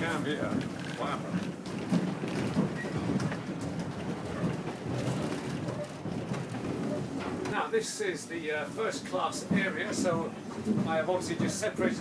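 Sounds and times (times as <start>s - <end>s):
small rattles and knocks: 0.0s - 7.7s, 9.0s - 12.0s
railway carriage rumbling on track: 0.0s - 12.0s.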